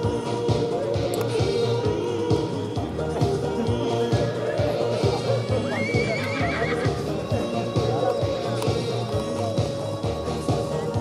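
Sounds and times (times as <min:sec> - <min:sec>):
background music with beat: 0:00.0 - 0:11.0
horse whinnying: 0:03.9 - 0:08.5.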